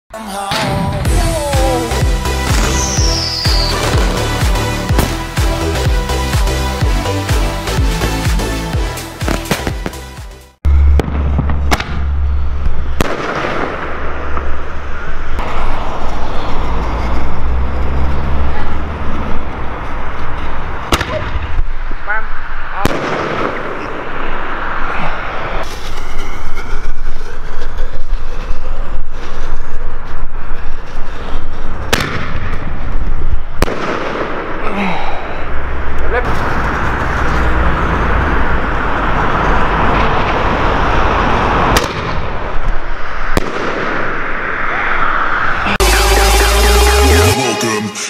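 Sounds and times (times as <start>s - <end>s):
fireworks bangs: 2.4s - 5.2s, 9.2s - 10.1s, 10.7s - 16.1s, 22.8s - 24.8s, 31.8s - 32.9s, 33.5s - 34.6s, 39.8s - 44.5s
firework bursting with sharp bang: 9.2s - 10.1s, 10.8s - 12.2s, 13.0s - 14.5s, 22.8s - 24.1s, 31.9s - 32.6s, 33.6s - 34.6s, 41.7s - 42.3s, 43.3s - 44.2s
low rumble: 10.6s - 34.6s.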